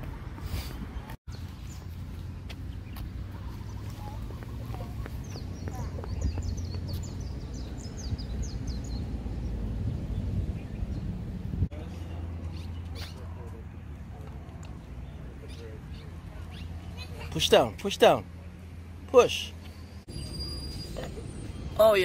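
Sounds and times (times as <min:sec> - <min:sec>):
bird chirping: 0:01.3 - 0:11.2.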